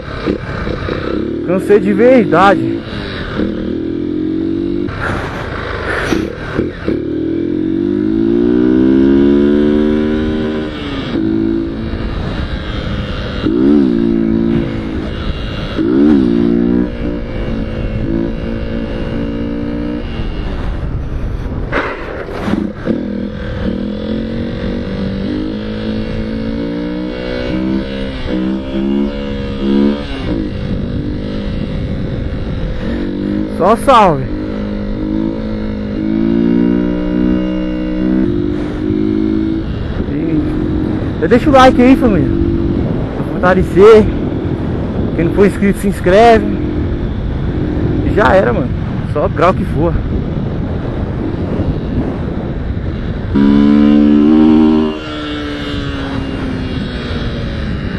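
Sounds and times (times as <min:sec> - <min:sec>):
motorcycle engine revving: 0:00.0 - 0:57.9
wind noise on microphone: 0:02.6 - 0:57.9.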